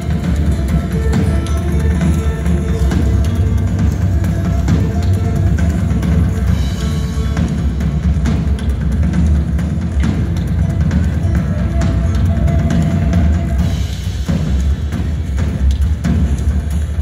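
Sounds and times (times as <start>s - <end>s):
drum kit playing: 0.0s - 17.0s.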